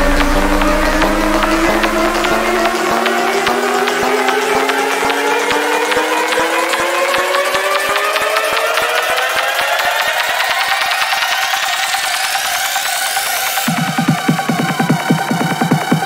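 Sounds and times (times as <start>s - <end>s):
drum roll: 0.0s - 6.5s
synth riser climbing in pitch: 0.0s - 6.7s.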